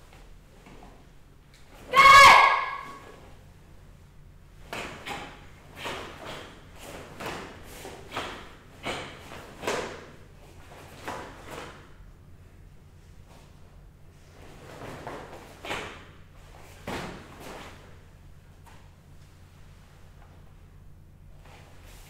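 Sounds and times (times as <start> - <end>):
person shouting kiai: 1.8 - 3.2.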